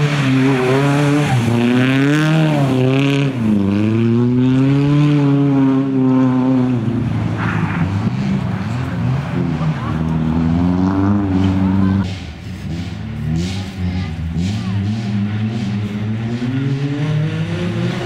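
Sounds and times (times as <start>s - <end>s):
rally car engine revving: 0.0s - 18.0s.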